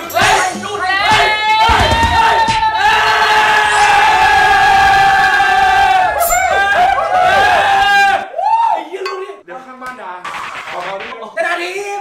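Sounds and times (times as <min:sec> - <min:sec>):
young men yelling: 0:00.0 - 0:09.4
whoops: 0:01.2 - 0:09.0.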